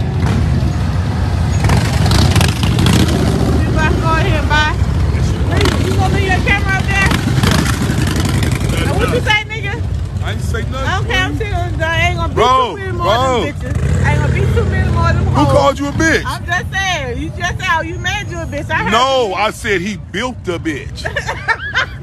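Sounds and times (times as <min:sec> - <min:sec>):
motorcycles rumbling past: 0:00.0 - 0:19.4
people's voices: 0:03.4 - 0:22.0.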